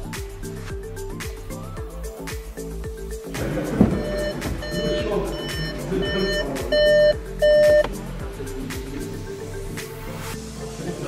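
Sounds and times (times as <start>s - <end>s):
background music with steady beat: 0.0s - 11.0s
phone ringing beeps: 3.9s - 7.9s.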